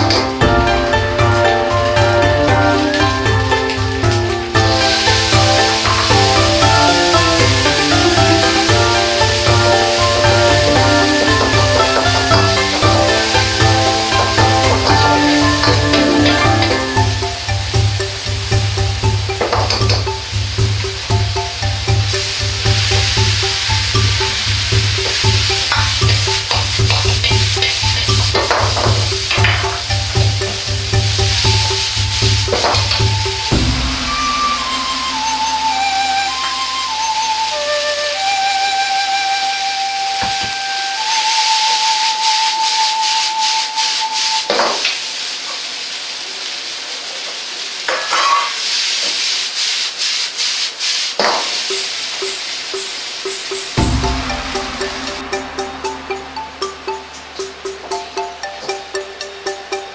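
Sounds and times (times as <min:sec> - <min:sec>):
ladle knocking on wok: 0:00.0 - 0:34.8
background music with steady beat: 0:00.0 - 0:38.5, 0:52.8 - 0:59.9
loud sizzle in a wok: 0:00.0 - 0:59.9.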